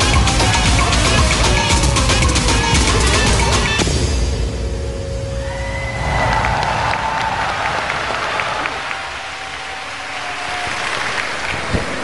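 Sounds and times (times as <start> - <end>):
stage music: 0.0 - 12.0
large audience applauding: 5.8 - 12.0.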